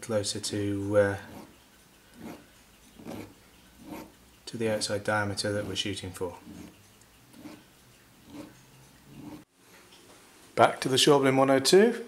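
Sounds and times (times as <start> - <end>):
hand file rasping on brass: 1.2 - 4.2, 5.4 - 9.4.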